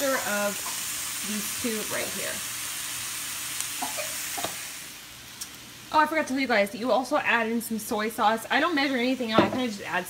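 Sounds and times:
vegetables sizzling in a wok: 0.0 - 10.0.

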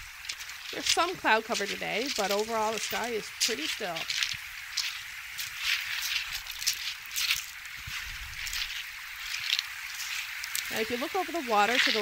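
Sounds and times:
river bubbling over stones: 0.0 - 12.0.

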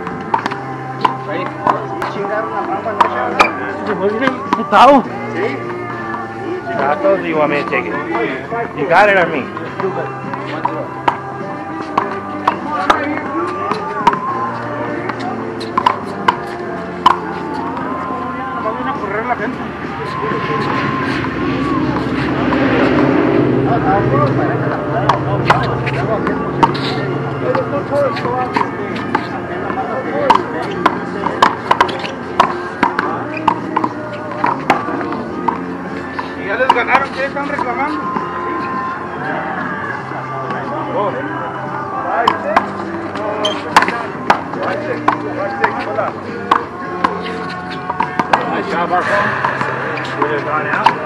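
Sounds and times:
faint voices: 0.0 - 51.0
low engine drone: 19.1 - 30.3, 48.6 - 51.0.

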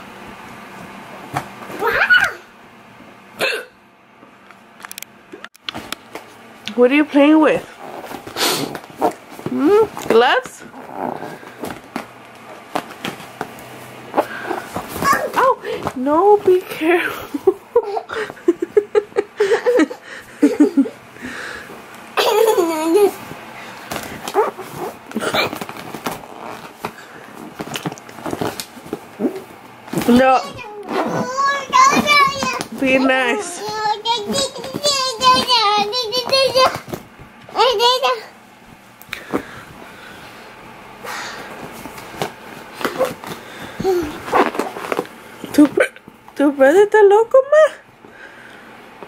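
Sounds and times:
rubber glove rustling: 23.9 - 29.1.

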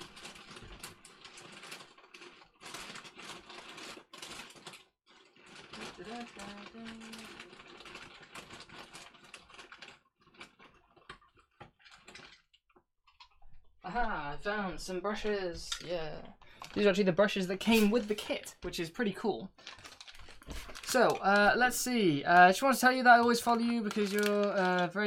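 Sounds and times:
rummaging clicks and rattles: 0.0 - 13.4, 19.6 - 25.0.

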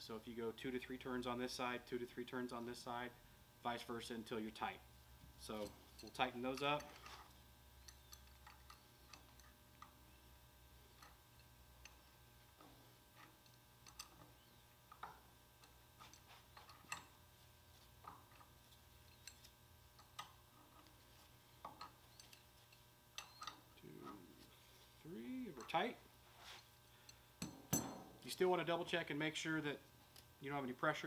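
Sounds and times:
low steady hum: 0.0 - 31.0.

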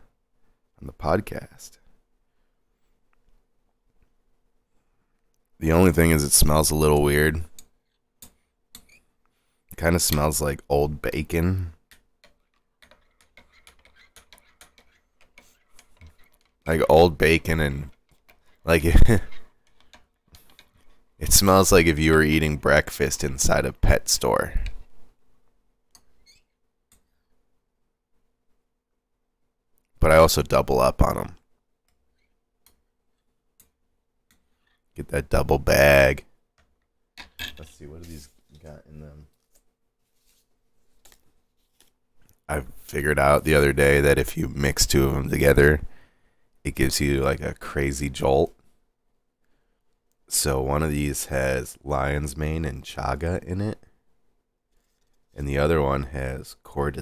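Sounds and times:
hands clicking and tapping objects: 11.8 - 16.7, 17.8 - 21.0.

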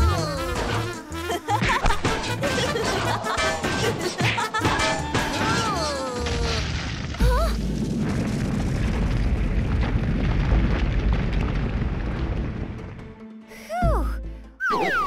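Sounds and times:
background music: 0.0 - 6.2, 12.6 - 15.0
deep rumble of ground shaking: 6.3 - 13.2.

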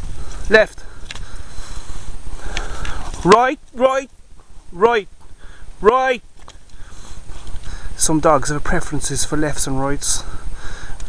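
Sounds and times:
wind rumble: 0.0 - 11.0
camera handling noise: 1.0 - 1.4.

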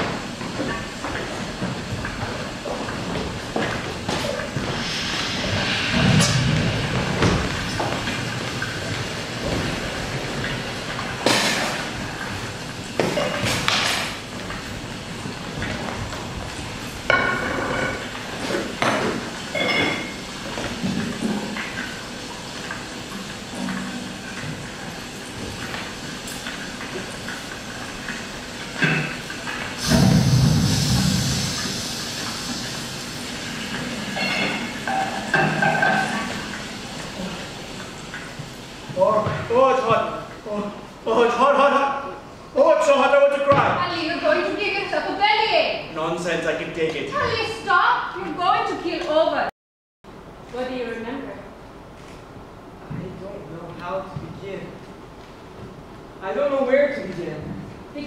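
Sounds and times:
steady rumbling noise: 0.0 - 18.5, 27.0 - 40.2.

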